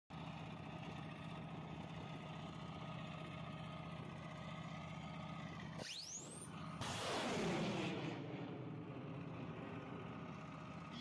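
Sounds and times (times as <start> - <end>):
diesel engine idling: 0.1 - 11.0.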